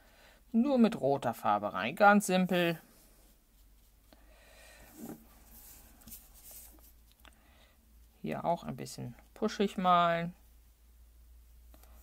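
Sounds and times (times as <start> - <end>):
low steady room hum: 0.0 - 12.0
paintbrush brushing on paper: 2.4 - 4.2, 4.9 - 7.0.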